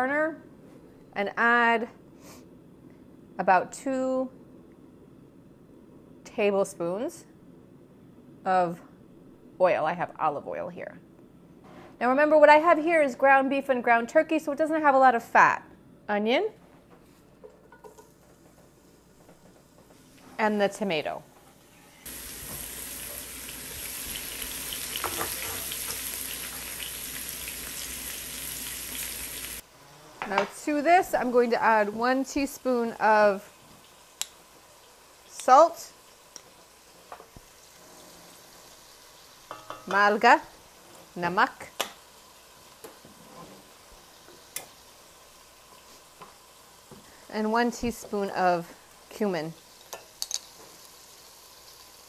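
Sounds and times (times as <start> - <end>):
onion and tomato sizzling in oil: 21.6 - 29.7, 30.6 - 52.0.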